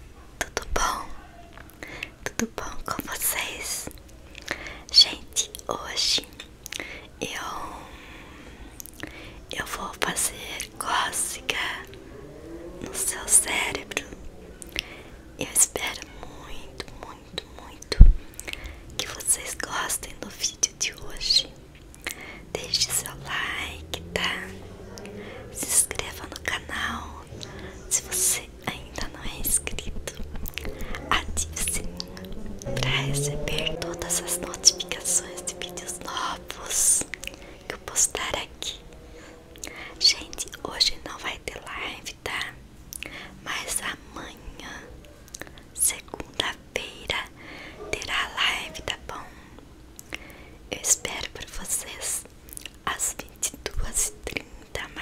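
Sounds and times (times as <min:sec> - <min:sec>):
woman whispering: 0:00.4 - 0:03.9, 0:04.8 - 0:06.4, 0:07.1 - 0:08.0, 0:09.4 - 0:12.0, 0:12.8 - 0:14.2, 0:14.8 - 0:38.9, 0:39.6 - 0:49.6, 0:50.7 - 0:55.0.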